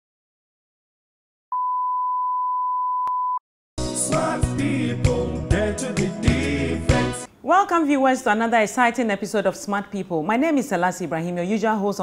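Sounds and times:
music: 3.8s - 7.3s.

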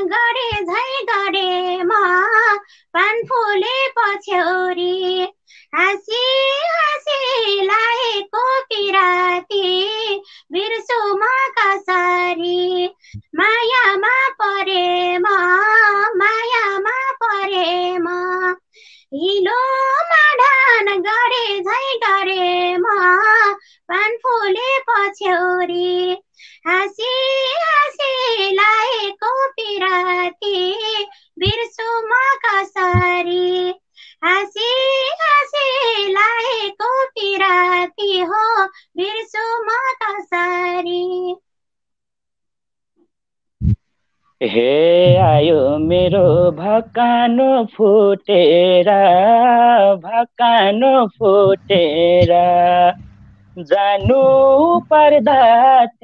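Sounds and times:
woman singing unaccompanied: 0.0s - 41.4s, 44.4s - 56.0s.

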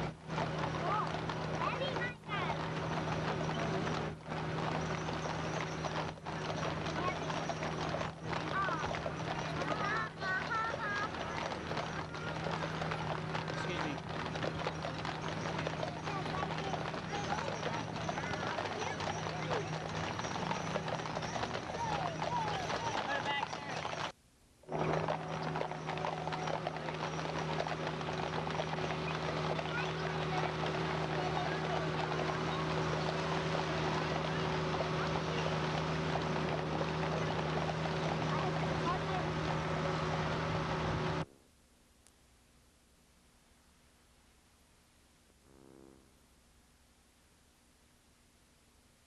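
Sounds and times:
voices: 0.0s - 24.1s, 24.7s - 41.3s
horse hooves clip-clopping on asphalt: 0.0s - 41.3s
steady low hum: 38.7s - 49.0s.

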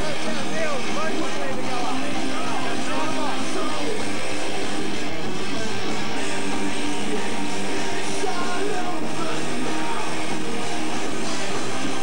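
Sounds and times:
heavy metal band playing live: 0.0s - 12.0s.

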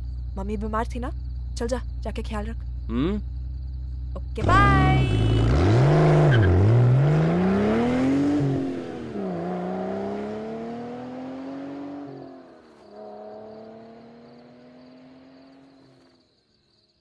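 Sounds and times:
sports car engine accelerating: 2.9s - 16.1s.

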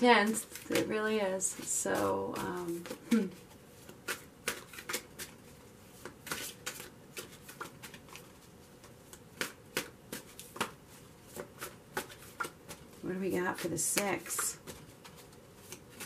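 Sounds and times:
cards being shuffled: 0.2s - 16.0s.

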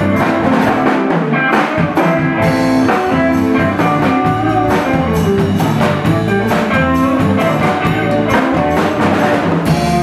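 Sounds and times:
drum kit steady beat: 0.0s - 10.0s
electric bass: 0.0s - 10.0s
electric guitars: 0.0s - 10.0s.

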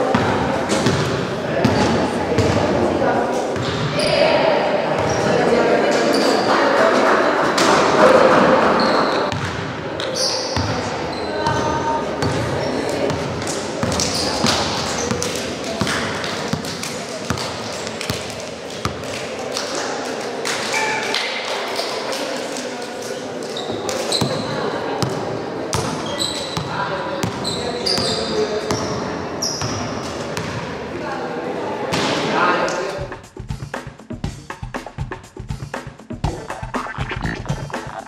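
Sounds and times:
indistinct chatter in a hall: 0.0s - 34.1s.

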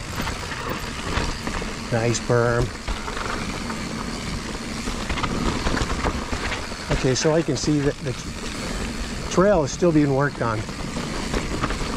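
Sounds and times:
bike knocks and rattles: 0.0s - 11.9s
tyres rumbling on dirt: 0.0s - 11.9s.

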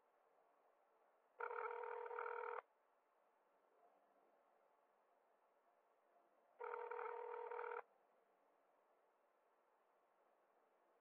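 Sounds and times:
telephone ringing tone: 1.4s - 2.6s, 6.6s - 7.8s.

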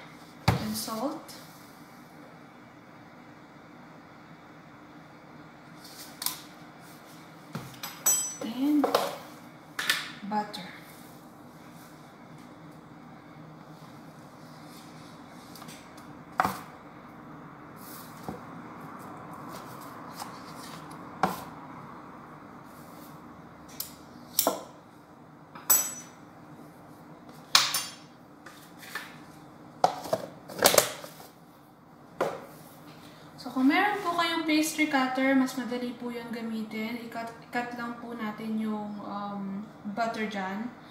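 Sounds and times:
steady low hum: 0.0s - 30.5s.

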